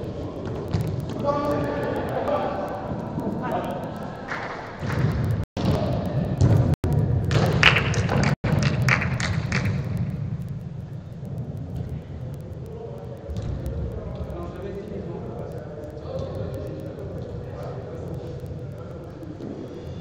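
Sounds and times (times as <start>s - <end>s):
players calling and shouting: 0.0s - 6.8s
low rumble: 4.8s - 20.0s.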